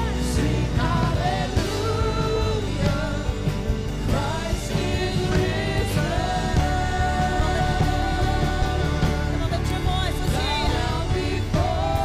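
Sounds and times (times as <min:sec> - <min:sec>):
drums: 0:00.0 - 0:12.0
electric guitar: 0:00.0 - 0:12.0
keyboards: 0:00.0 - 0:12.0
women singing: 0:00.0 - 0:12.0.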